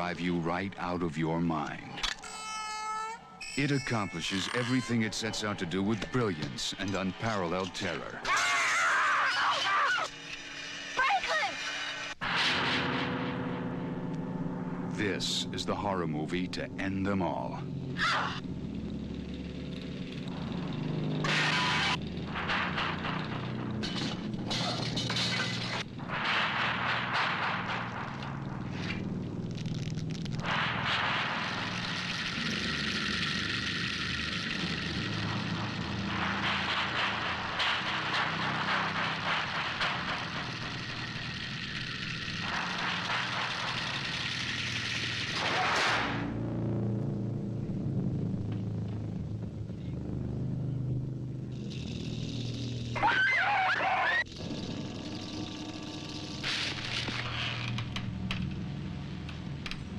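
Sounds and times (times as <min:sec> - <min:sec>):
harsh grinding noise: 0:03.4 - 0:59.9
low steady drone: 0:10.1 - 0:59.9
harsh noise bursts: 0:25.2 - 0:46.5.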